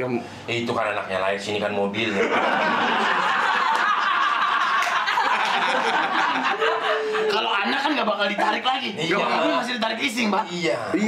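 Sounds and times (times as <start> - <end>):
people laughing: 2.1 - 8.9.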